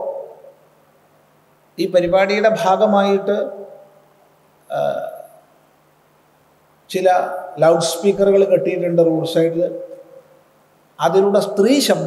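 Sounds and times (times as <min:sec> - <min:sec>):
man lecturing: 0:01.8 - 0:03.7, 0:04.7 - 0:05.3, 0:06.9 - 0:10.0, 0:11.0 - 0:12.0.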